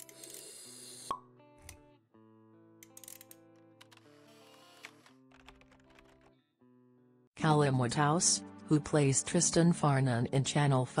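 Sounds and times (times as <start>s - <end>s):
soft background music: 0.0s - 6.3s, 7.4s - 11.0s.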